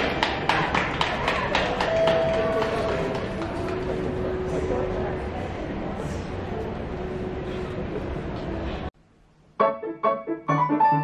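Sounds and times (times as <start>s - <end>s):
people clapping: 0.0s - 4.2s.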